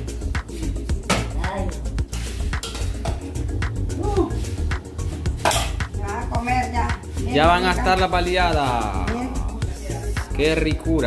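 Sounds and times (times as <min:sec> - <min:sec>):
background music with steady beat: 0:00.0 - 0:11.0
spoon and dishes clinking: 0:02.6 - 0:03.4, 0:05.4 - 0:05.9.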